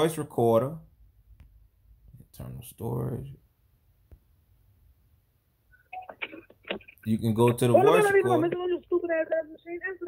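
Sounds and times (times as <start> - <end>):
voice-mail recording playing: 5.7 - 10.0.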